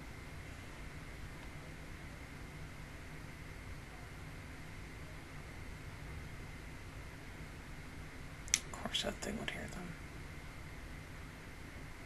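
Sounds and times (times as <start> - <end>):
woman speaking: 8.6 - 10.0.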